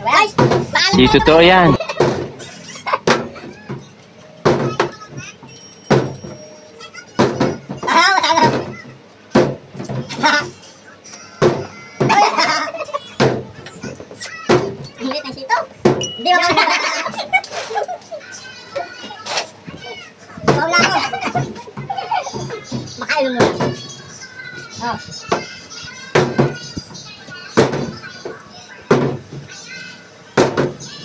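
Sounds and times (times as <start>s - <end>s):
men laughing: 16.3s - 18.2s.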